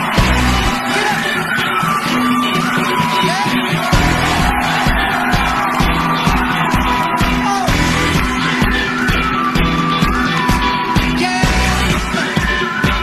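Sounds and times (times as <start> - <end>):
drum beat: 0.0 - 13.0
live pop-rock band playing: 0.0 - 13.0.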